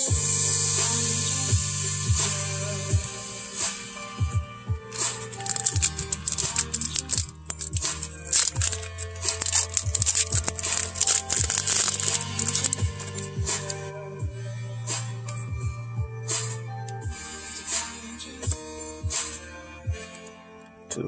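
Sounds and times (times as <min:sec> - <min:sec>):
background music with bass beat: 0:00.0 - 0:21.0
foil wrapper tearing and crinkling: 0:04.9 - 0:13.9.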